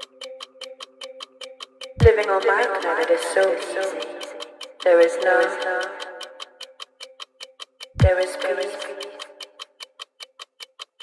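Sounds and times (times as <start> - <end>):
dry ticking percussion: 0.0 - 11.0.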